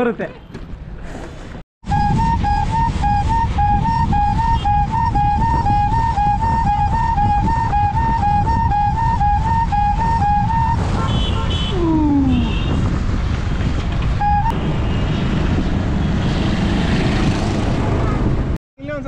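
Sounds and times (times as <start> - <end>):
road traffic: 0.0 - 18.6
flute tune: 1.8 - 10.9, 14.2 - 14.6
wind rushing over microphone: 1.8 - 18.6
motorcycles passing: 3.6 - 18.6.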